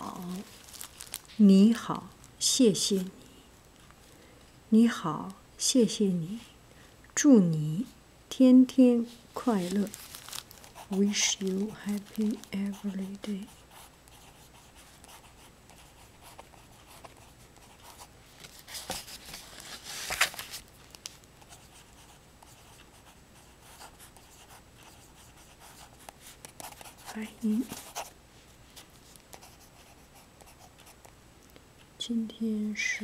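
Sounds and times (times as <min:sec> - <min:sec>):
pen scratching on card: 0:10.7 - 0:18.1, 0:21.4 - 0:28.1.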